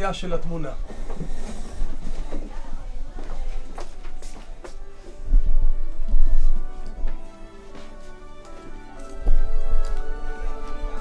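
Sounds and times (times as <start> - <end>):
people walking off: 0.2 - 11.0
office chairs pushed back: 0.8 - 2.7.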